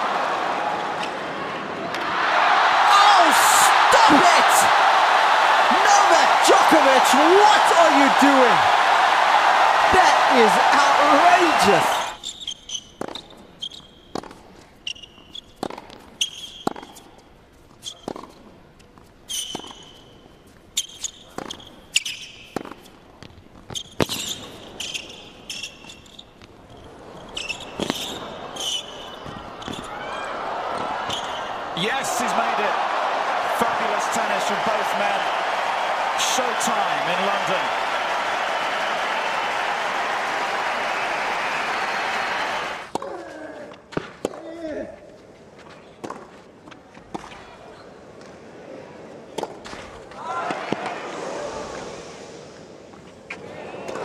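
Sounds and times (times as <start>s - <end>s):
crowd cheering and applause: 0.0s - 12.2s, 30.0s - 43.0s
shoes squeaking: 11.9s - 14.1s.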